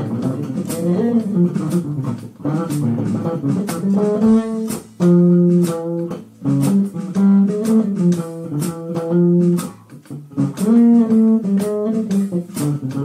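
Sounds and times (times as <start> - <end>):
plucked bass: 0.0 - 13.0.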